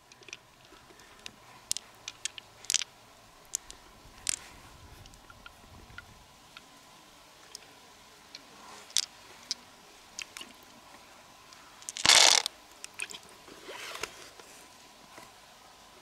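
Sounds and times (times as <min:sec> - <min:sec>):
crunchy rustle: 0:00.0 - 0:06.2, 0:07.5 - 0:15.4
small clicks of pearls: 0:00.0 - 0:06.7, 0:08.3 - 0:09.6, 0:10.2 - 0:10.7, 0:11.5 - 0:13.3
loud crunch: 0:11.9 - 0:12.5.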